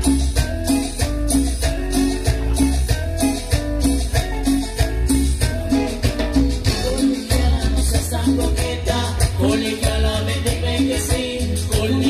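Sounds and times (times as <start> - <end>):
band playing instrumental music: 0.0 - 12.0.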